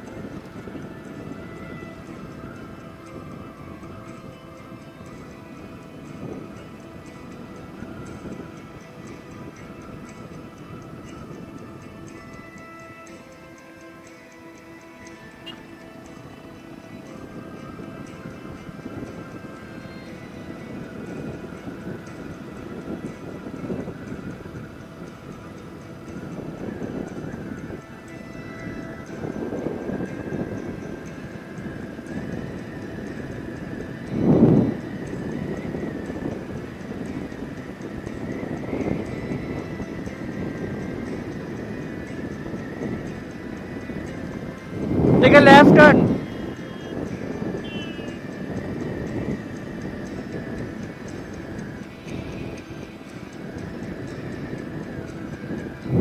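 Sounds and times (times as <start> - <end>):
wind noise: 0.0 - 56.0.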